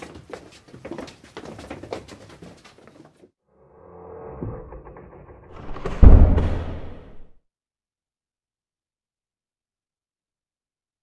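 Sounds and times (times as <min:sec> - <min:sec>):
cinematic riser: 0:03.5 - 0:07.4
deep boom hit: 0:05.5 - 0:07.3.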